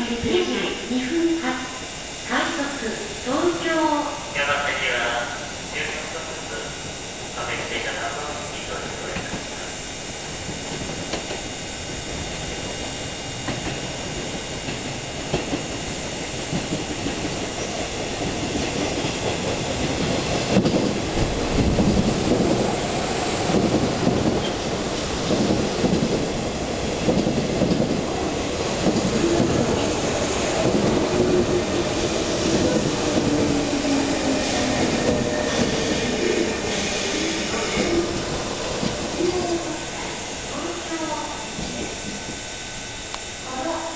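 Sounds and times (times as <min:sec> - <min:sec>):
train wheels rumbling on rails: 0:00.0 - 0:43.9.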